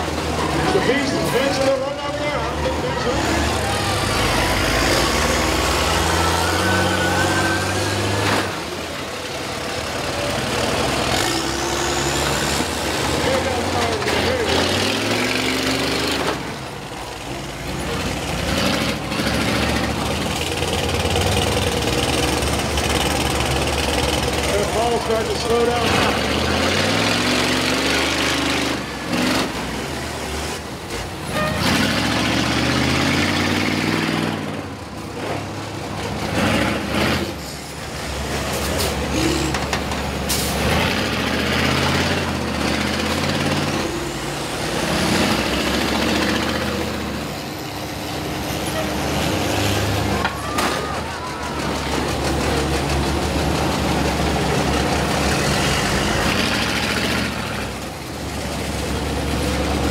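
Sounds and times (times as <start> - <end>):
bus engines revving: 0.0 - 59.9.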